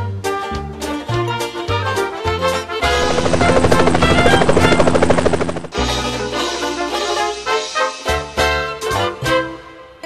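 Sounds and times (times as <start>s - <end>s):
music: 0.0s - 10.0s
helicopter rotor beating: 2.8s - 5.9s.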